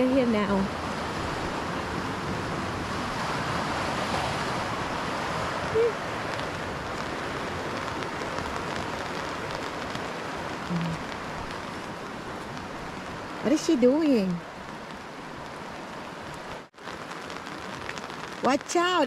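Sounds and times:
light rain: 0.0 - 19.0
creek water rushing: 0.6 - 18.4.

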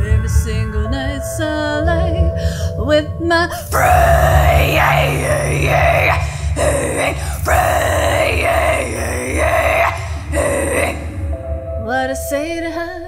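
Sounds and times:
low backing track: 0.0 - 13.0
woman singing wordlessly: 0.0 - 13.0.

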